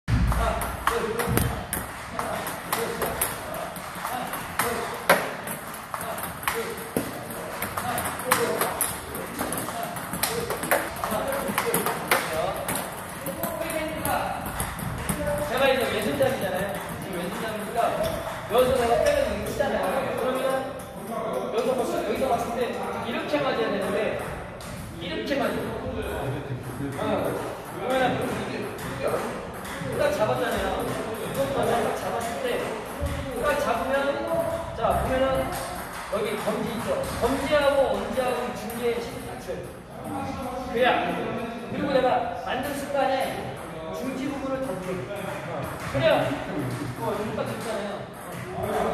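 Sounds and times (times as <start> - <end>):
table tennis balls being hit: 0.1 - 48.9.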